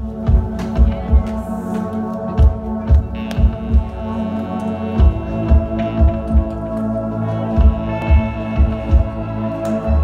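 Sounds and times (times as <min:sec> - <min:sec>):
low thumping pulse: 0:02.3 - 0:10.0.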